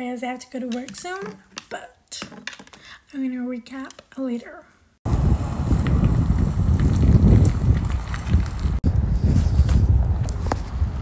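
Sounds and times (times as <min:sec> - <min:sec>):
wind buffeting microphone: 0:05.0 - 0:11.0.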